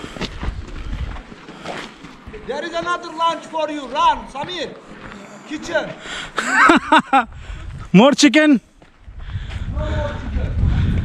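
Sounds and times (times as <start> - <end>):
wind buffeting microphone: 0.0 - 1.3, 7.2 - 8.0, 9.0 - 11.0
footsteps on gritty rock path: 0.0 - 6.9, 8.6 - 11.0.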